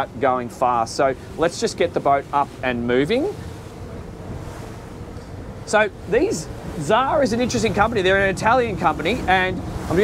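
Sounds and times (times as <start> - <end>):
outboard motors humming: 0.0 - 10.0
water rushing past boat hull: 0.0 - 10.0
wind buffeting microphone: 1.2 - 10.0.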